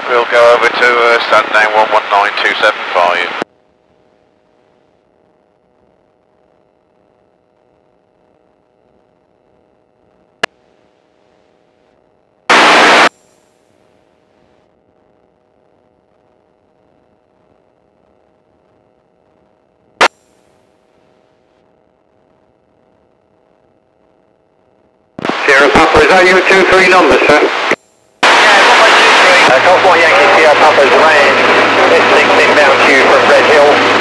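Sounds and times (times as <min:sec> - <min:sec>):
burst of radio static: 0:00.0 - 0:03.4, 0:12.5 - 0:13.4, 0:25.2 - 0:34.0
radio hiss: 0:00.0 - 0:03.5, 0:11.3 - 0:14.6, 0:24.8 - 0:34.0
thin steady hum: 0:00.0 - 0:34.0
sharp radio clicks: 0:25.2 - 0:26.0.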